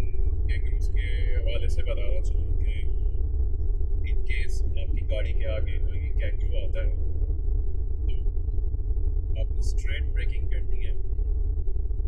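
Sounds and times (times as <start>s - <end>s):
road and engine rumble: 0.0s - 2.9s
faint sustained music tones: 0.0s - 12.0s.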